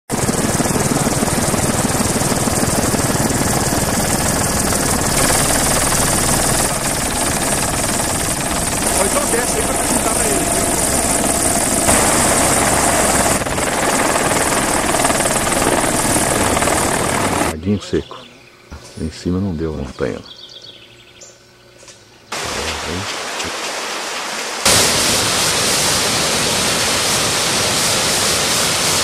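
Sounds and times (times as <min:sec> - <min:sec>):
helicopter engine and rotor drone: 0:00.1 - 0:17.6.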